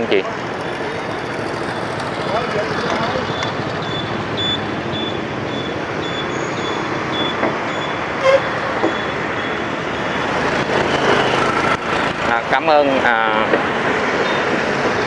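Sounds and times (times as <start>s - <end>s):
motorbikes and cars passing: 0.0s - 15.0s
faint high beep: 3.3s - 10.2s
horn toot: 8.2s - 8.6s.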